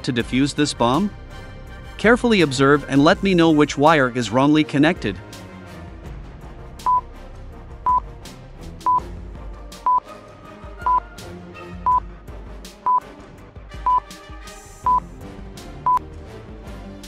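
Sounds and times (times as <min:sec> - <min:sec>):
background music: 0:00.0 - 0:17.0
countdown timer beeps: 0:09.8 - 0:10.0, 0:10.8 - 0:11.0, 0:11.8 - 0:12.0.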